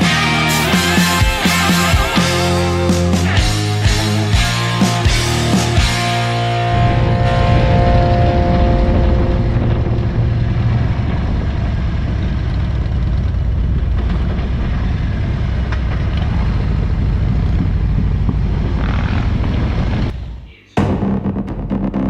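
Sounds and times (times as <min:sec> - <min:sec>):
motorcycle engine rumble: 0:04.6 - 0:20.4
wind rush: 0:06.4 - 0:20.2.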